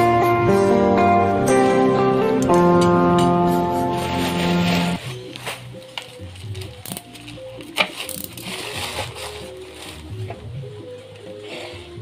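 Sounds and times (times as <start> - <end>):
quiet background music: 0.0 - 12.0
paper and cardboard packaging rustling: 3.9 - 11.8.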